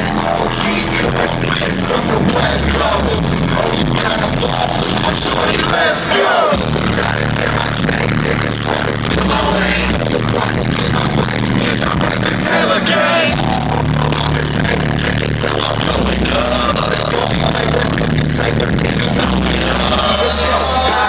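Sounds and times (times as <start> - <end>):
live hip hop music: 0.0 - 21.0
person rapping: 0.0 - 21.0.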